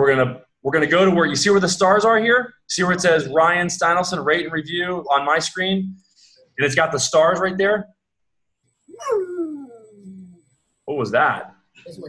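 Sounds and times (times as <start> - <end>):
dog howling with falling pitch: 9.0 - 9.9.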